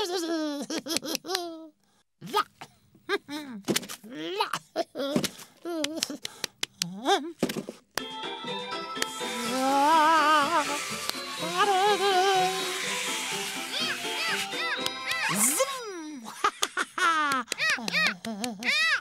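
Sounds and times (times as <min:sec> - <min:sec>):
music with warbling melody: 0:08.0 - 0:15.6
steady hiss: 0:09.0 - 0:14.6
cartoon gibberish voice: 0:13.7 - 0:16.2, 0:17.5 - 0:19.0.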